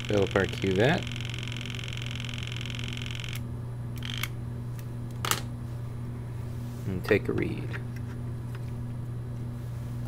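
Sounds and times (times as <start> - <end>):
motorised pipette whirring: 0.0 - 3.4.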